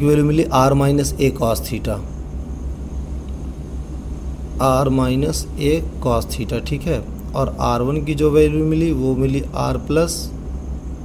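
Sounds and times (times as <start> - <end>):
faint high whine: 0.0 - 11.0
low hum and rumble: 0.0 - 11.0.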